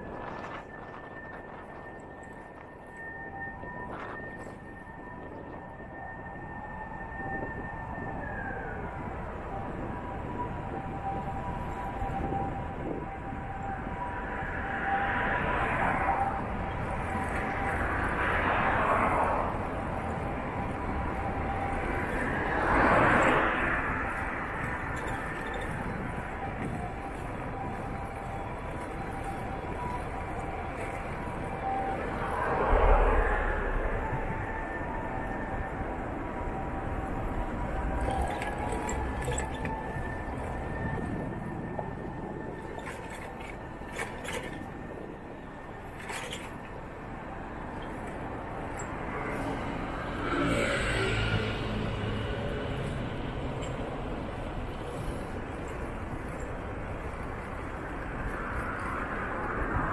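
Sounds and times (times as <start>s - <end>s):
bicycle riding noise: 0.0s - 59.9s
road rumble: 0.0s - 59.9s
street traffic hum: 0.0s - 59.9s
thin steady whine: 0.0s - 59.9s
vehicle approaching: 15.4s - 35.9s, 48.0s - 59.9s.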